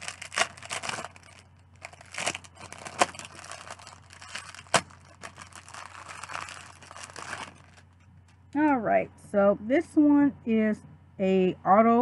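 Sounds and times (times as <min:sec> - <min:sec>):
plastic packaging crinkling: 0:00.0 - 0:08.4.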